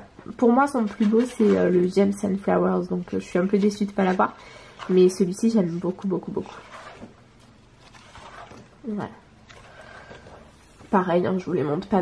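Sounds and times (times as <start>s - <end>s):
paper pages turning: 7.8s - 8.7s.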